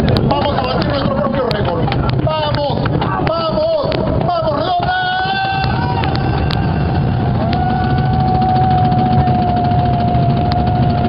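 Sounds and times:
cajones drumming: 0.0s - 11.0s.

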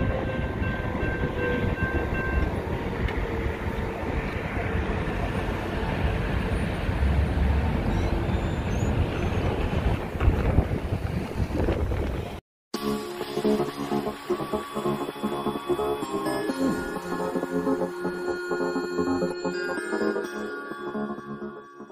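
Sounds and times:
wind buffeting microphone: 7.6s - 12.4s.

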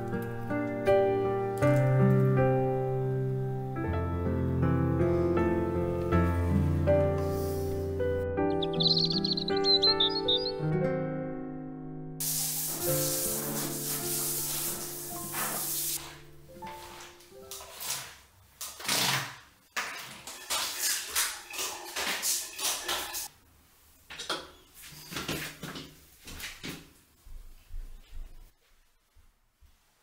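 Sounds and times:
shower head spraying onto tile: 12.2s - 16.2s
squeegee swiping wet tiles: 12.2s - 16.2s, 19.8s - 23.3s.

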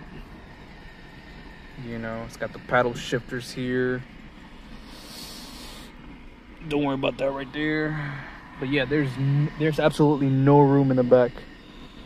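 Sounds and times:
man talking: 6.6s - 11.4s.

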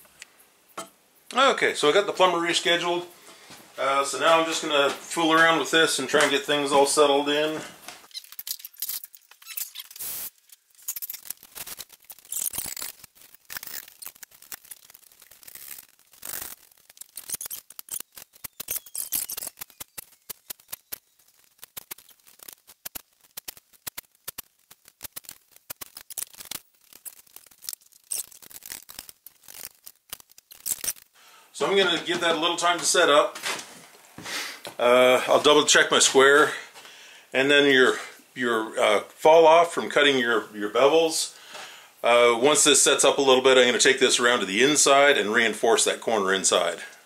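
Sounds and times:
wood and metal squeaking: 8.0s - 11.3s, 12.2s - 20.9s.

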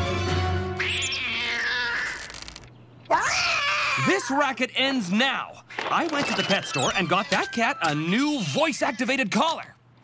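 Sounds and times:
background music: 0.0s - 0.8s
cartoon cat yowling: 0.8s - 2.4s, 3.1s - 4.1s.

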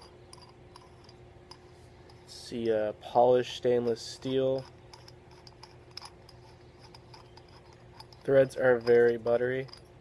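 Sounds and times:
metal threads ticking and rubbing: 0.0s - 10.0s.

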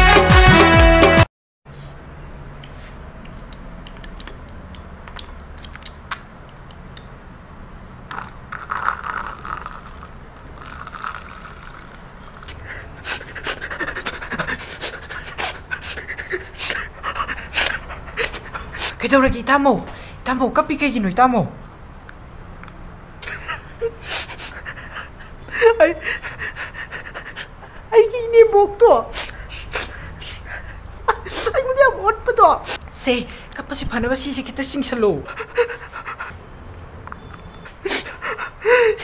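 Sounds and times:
strained voiced sound: 8.1s - 21.6s, 23.2s - 36.4s
water pouring into plastic cup: 8.6s - 12.4s
man breathing hard: 12.6s - 19.0s, 23.9s - 27.9s, 29.2s - 30.9s, 37.7s - 39.0s.

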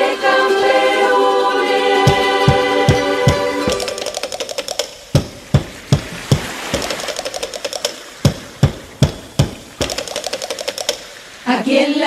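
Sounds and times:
drums playing quick beat: 2.0s - 11.1s.

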